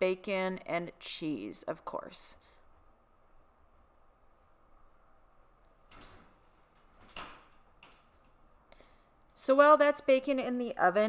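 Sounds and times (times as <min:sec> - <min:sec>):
faint knocks and clicks: 0:05.6 - 0:08.4.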